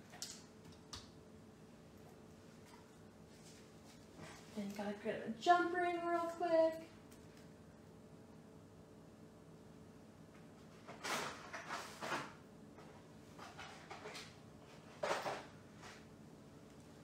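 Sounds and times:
rustling and shuffling of supplies: 2.5s - 4.9s, 10.6s - 16.1s.

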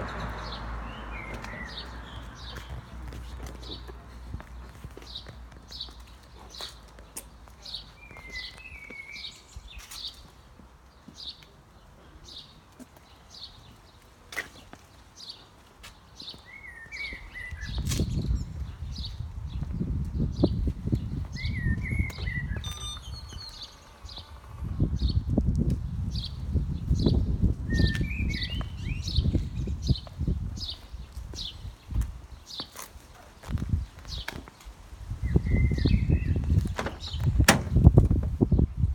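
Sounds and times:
bird chirping: 21.3s - 25.4s
low rumbling noise: 23.1s - 27.4s.

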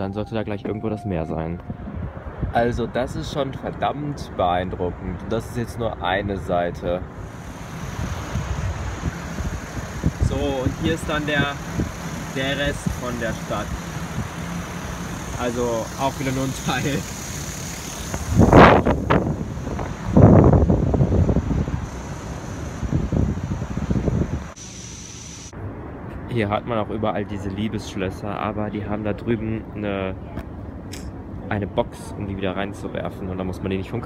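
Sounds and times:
wind buffeting microphone: 0.0s - 4.2s, 7.0s - 24.6s
distant city traffic hiss: 1.6s - 34.0s.

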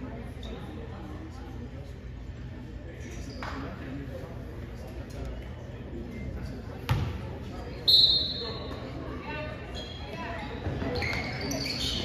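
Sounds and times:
basketball bouncing on wood floor: 6.9s - 7.1s.

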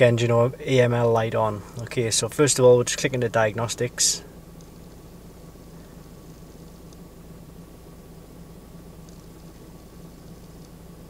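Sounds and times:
steady low hum in car cabin: 0.0s - 11.0s.

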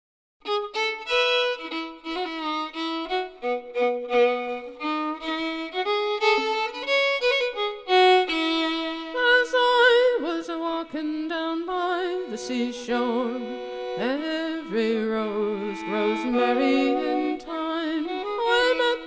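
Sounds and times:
fiddle playing folk tune: 0.4s - 19.0s.

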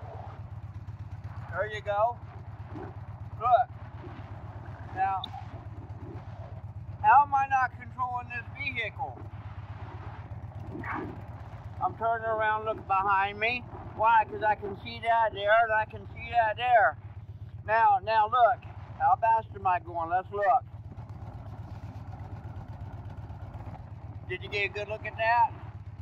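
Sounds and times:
motorcycle engine rumble: 0.0s - 26.0s.

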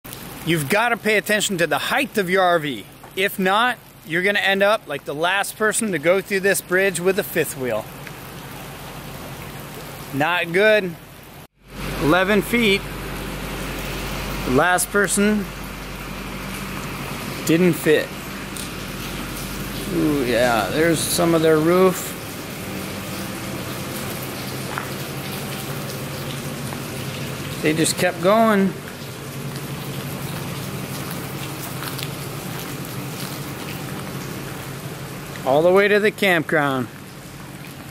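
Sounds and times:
light rain hissing: 0.1s - 37.9s
low steady hum: 0.1s - 37.9s.

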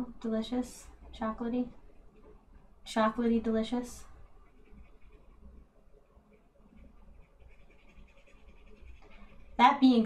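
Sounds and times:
paintbrush dabbing on paper: 1.4s - 10.0s.

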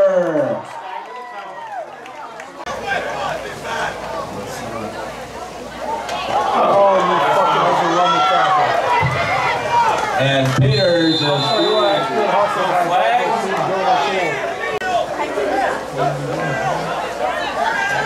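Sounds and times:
spectators talking and shouting: 0.0s - 18.0s
shrill referee whistle: 10.6s - 12.1s.

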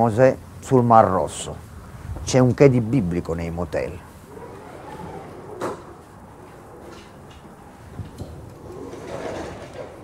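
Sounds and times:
sliding door motor whir: 4.1s - 10.0s.

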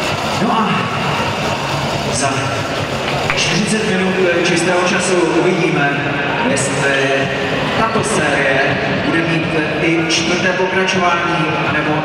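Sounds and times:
man announcing over loudspeaker: 0.0s - 12.0s
sports hall background noise: 0.0s - 12.0s.

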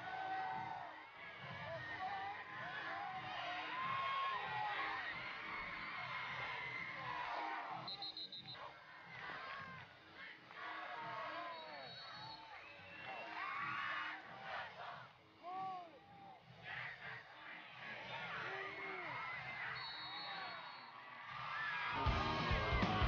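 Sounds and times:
crowd cheering and shouting: 0.0s - 23.0s.

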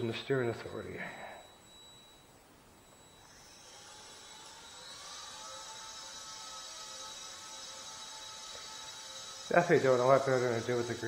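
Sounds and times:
small propeller motor whining: 3.0s - 11.0s.

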